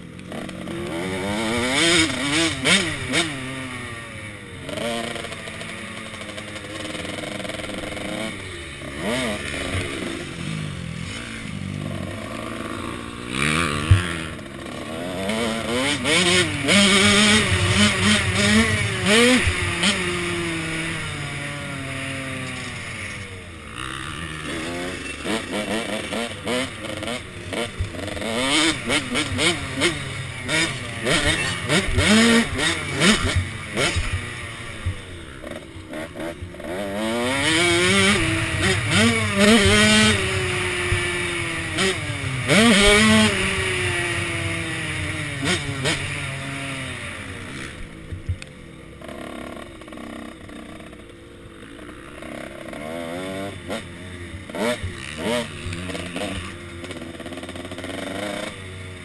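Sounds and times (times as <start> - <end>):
motocross engine revving: 0.0 - 59.0.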